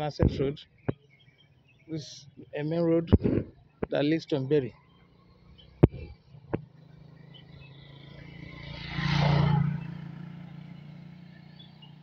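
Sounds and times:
motor vehicle passing: 4.8 - 12.0.

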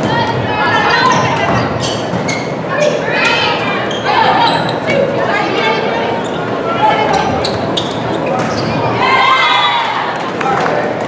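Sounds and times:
people calling and cheering: 0.0 - 11.0.

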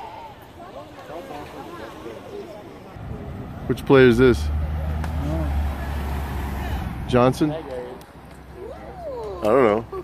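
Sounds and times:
vehicle engine rumble passing: 3.0 - 9.1.

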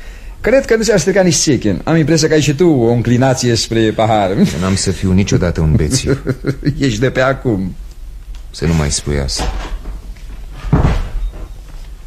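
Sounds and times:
steady low hum: 0.0 - 12.0
door shutting thud: 10.6 - 11.5.

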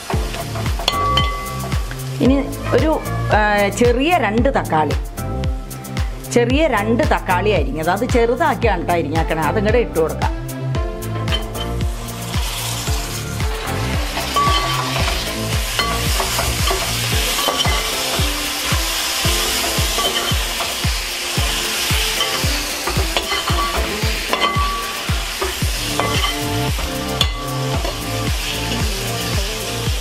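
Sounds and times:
food sizzling: 0.0 - 3.9, 11.0 - 30.0
metal spatula scraping pot: 14.1 - 18.7, 19.3 - 20.8, 22.1 - 28.1.

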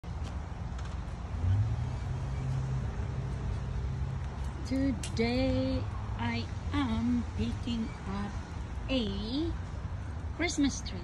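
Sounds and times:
engine hum: 0.0 - 11.0
traffic rumble: 0.0 - 11.0.

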